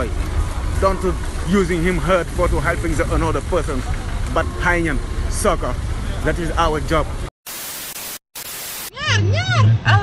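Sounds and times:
street sound: 0.0s - 10.0s
white noise static bursts: 7.2s - 8.9s.

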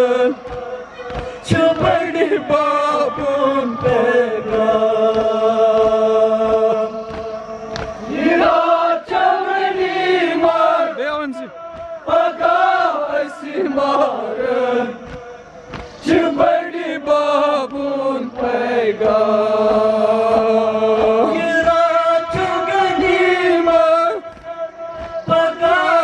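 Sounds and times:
group of men singing along: 0.0s - 26.0s
man chanting a lament: 10.4s - 15.4s, 19.0s - 26.0s.

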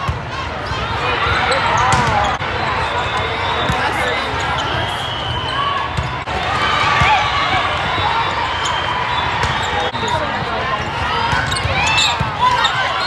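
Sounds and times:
players and spectators chattering: 0.0s - 13.0s
volleyball struck with sharp slaps: 1.9s - 2.2s.

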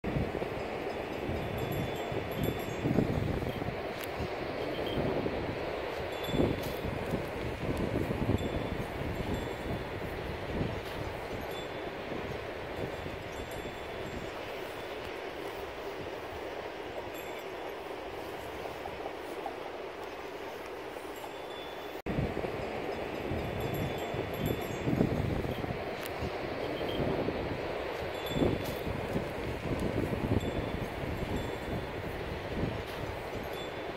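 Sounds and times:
wind buffeting microphone: 0.0s - 21.2s, 22.0s - 33.9s.

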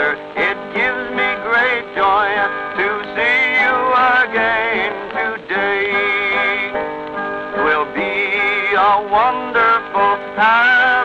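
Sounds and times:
man singing with vibrato: 0.0s - 6.9s, 7.5s - 11.0s
guitar: 0.0s - 11.0s
piano: 0.0s - 11.0s.

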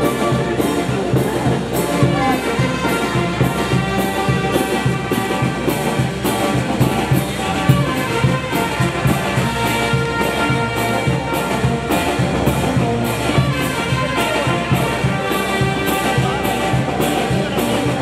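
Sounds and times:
brass band playing dance tune: 0.0s - 18.0s.

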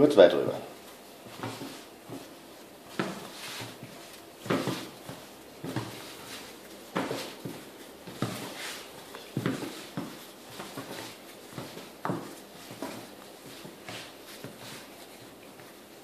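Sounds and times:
hands rubbing on dough: 0.6s - 16.0s
soft thuds of dough: 1.2s - 15.7s.

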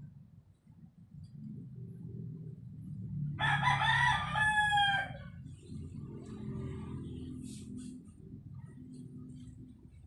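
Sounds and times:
rooster crowing: 3.4s - 5.4s.

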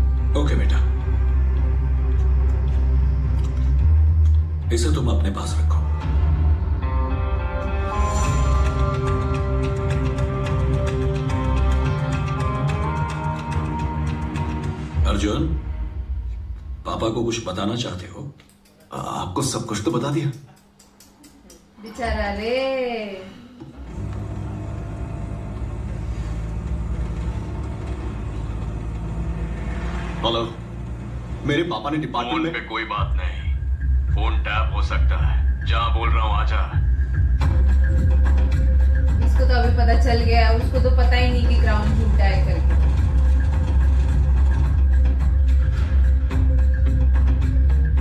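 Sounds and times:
vehicle engine rumble: 23.6s - 32.5s.

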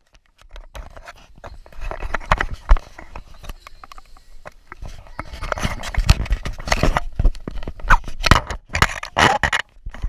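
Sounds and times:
camera handling knocks and scrapes: 4.7s - 10.0s.

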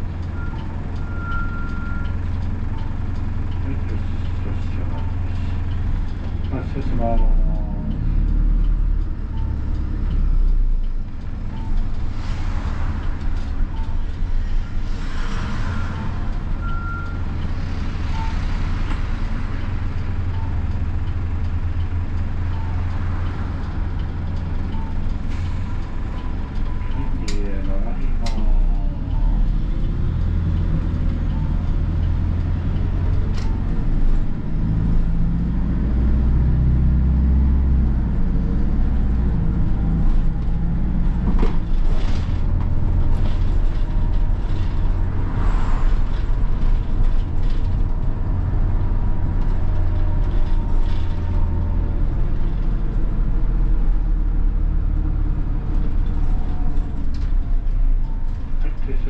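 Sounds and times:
bus diesel engine droning: 0.0s - 59.0s.

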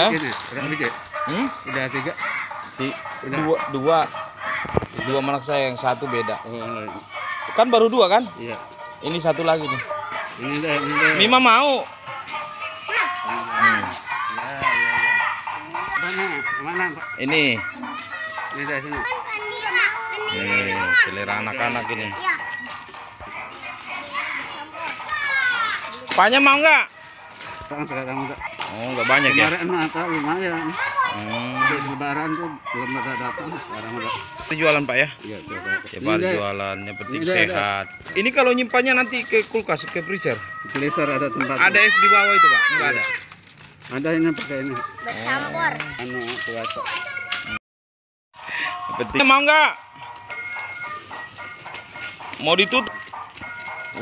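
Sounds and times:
music with held notes: 0.0s - 47.6s, 48.4s - 54.0s
young children chattering: 12.8s - 16.4s, 17.6s - 26.2s
child's high call falling in pitch: 41.7s - 43.3s.

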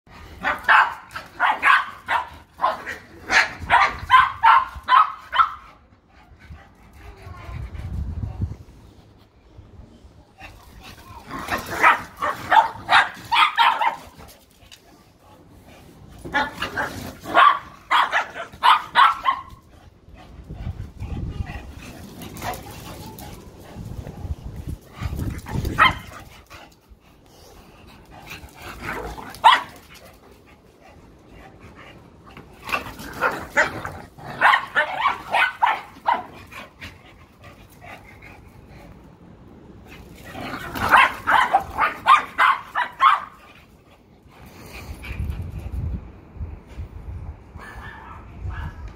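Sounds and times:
dogs barking: 0.4s - 5.6s, 11.8s - 14.1s, 17.3s - 19.6s, 25.7s - 26.1s, 29.4s - 29.8s, 33.2s - 36.4s, 40.7s - 43.4s.

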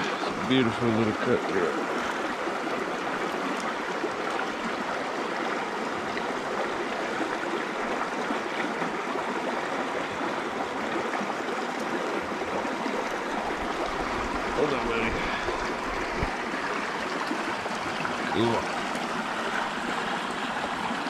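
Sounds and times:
stream running over rocks: 0.0s - 21.0s.

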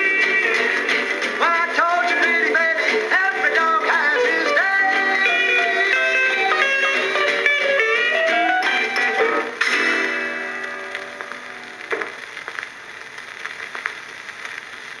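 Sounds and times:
vinyl clicks and crackle: 0.0s - 5.2s, 7.0s - 15.0s
rock and roll record playing: 0.0s - 15.0s.

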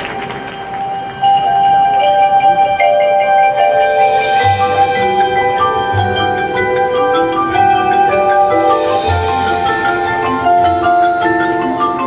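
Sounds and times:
marching band music: 0.0s - 12.0s.

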